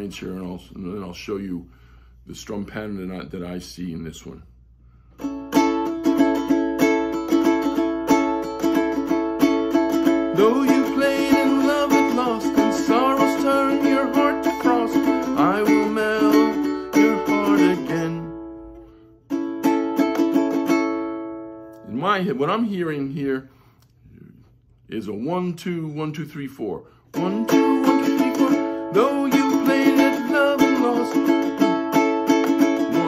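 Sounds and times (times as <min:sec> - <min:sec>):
ukulele strumming: 0:05.2 - 0:22.2, 0:27.1 - 0:33.0
man singing: 0:10.2 - 0:18.5, 0:27.2 - 0:33.0.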